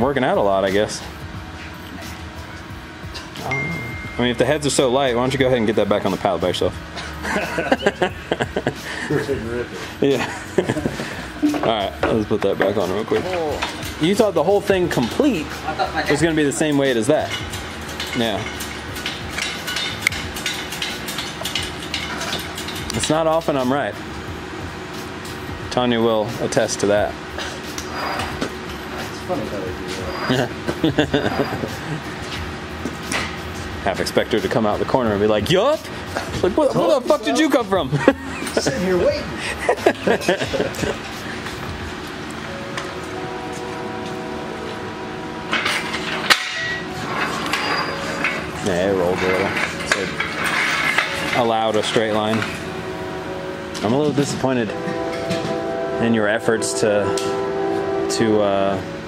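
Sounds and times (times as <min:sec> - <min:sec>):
engine hoist chain clanking: 0:16.1 - 0:23.5, 0:45.5 - 0:52.6
sharp metal clank: 0:45.5 - 0:52.5.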